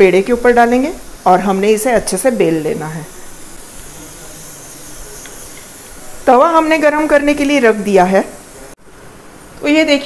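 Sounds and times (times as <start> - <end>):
gas stove burner hissing: 0.0 - 10.0.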